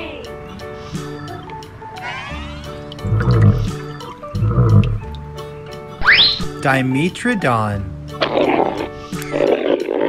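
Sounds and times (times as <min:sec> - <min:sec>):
background music: 0:00.0 - 0:10.0
dinosaur roar: 0:02.0 - 0:05.1.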